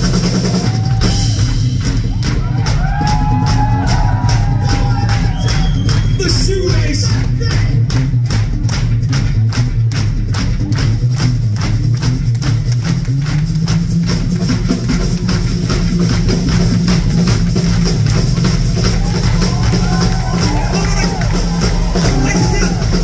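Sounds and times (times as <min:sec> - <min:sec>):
drum kit fast beat: 0:00.0 - 0:23.0
steady bass line: 0:00.0 - 0:23.0.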